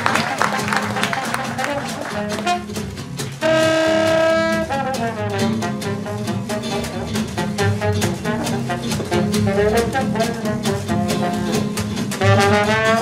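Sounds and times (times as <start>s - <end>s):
double bass: 0.0s - 13.0s
guitar: 0.0s - 13.0s
trombone: 0.0s - 13.0s
trumpet: 0.0s - 13.0s.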